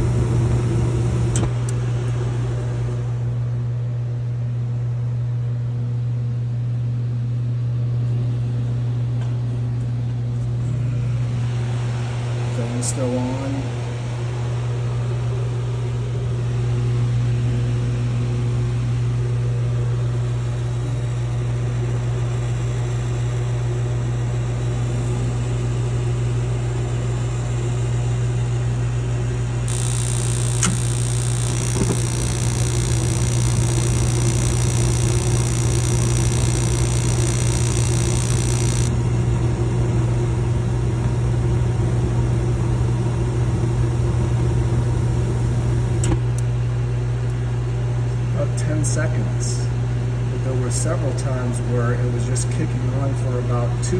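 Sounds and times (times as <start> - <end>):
burner ignition click: 0.0 - 2.2, 29.7 - 39.1, 44.9 - 46.5
heater blower humming: 0.0 - 4.6, 9.2 - 20.1, 29.3 - 47.4
burner flame hissing: 29.7 - 39.0.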